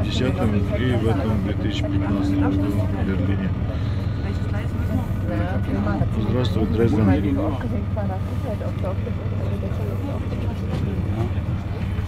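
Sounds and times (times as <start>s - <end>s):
faint passenger voices: 0.0s - 12.0s
train carriage rumble: 0.0s - 12.0s.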